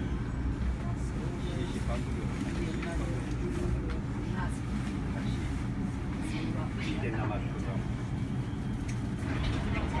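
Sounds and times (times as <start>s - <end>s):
train rumble: 0.0s - 10.0s.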